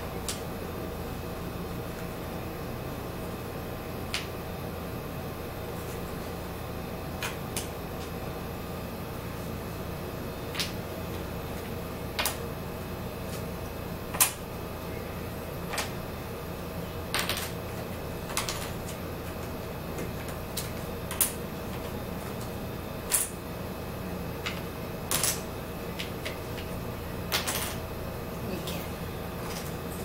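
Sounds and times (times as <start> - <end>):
low room hum: 0.0 - 30.0
puzzle pieces tapping on wooden table: 17.1 - 17.6.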